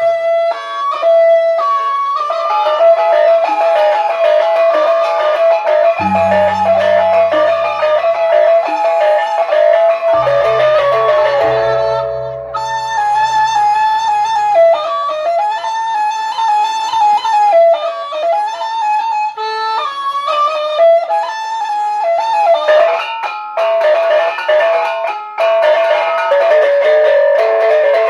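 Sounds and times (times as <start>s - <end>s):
gamelan ensemble playing: 6.0s - 14.9s.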